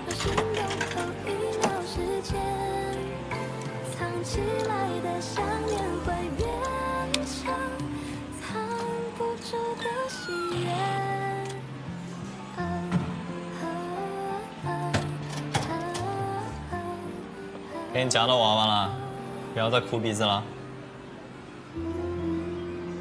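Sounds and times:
person singing: 0:00.0 - 0:19.8, 0:21.8 - 0:23.0.

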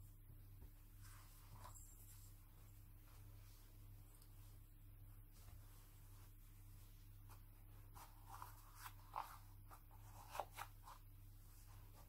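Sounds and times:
baby clothes rustling: 0:00.6 - 0:04.7, 0:05.3 - 0:12.0.

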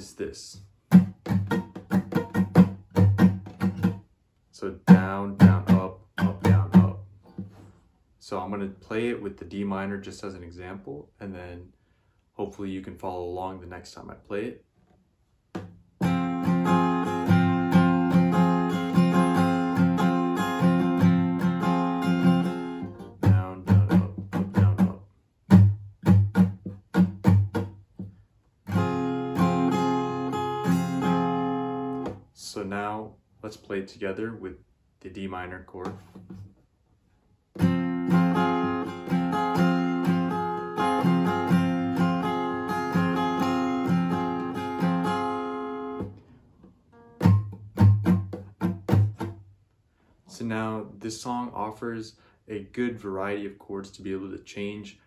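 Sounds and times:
acoustic guitar strumming: 0:00.9 - 0:04.0, 0:04.9 - 0:07.6, 0:15.6 - 0:27.9, 0:28.7 - 0:32.2, 0:37.6 - 0:46.3, 0:46.9 - 0:49.5.

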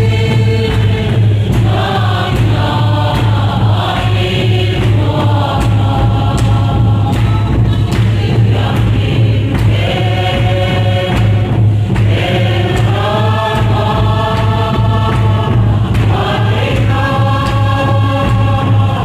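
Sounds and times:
steady low hum: 0:00.0 - 0:19.0
women singing held notes: 0:00.0 - 0:19.0.

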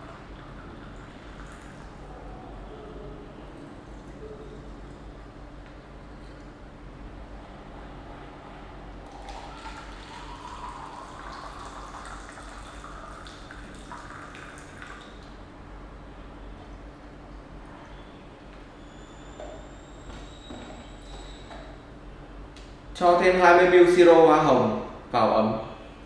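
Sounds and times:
water pouring into a plastic jug: 0:09.0 - 0:15.4.

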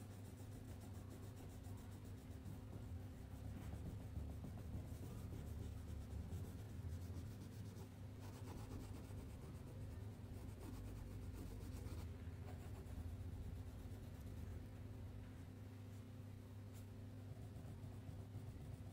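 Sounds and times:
crayon scribbling on paper: 0:00.0 - 0:14.4
steady low hum: 0:00.0 - 0:18.9.

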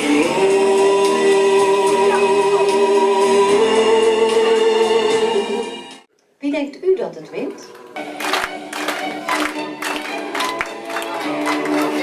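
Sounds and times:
song over sound system: 0:00.0 - 0:06.0.

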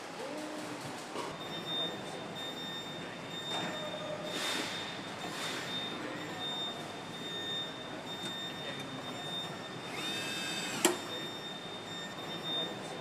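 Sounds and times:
machinery high-pitched whine: 0:01.5 - 0:13.0.

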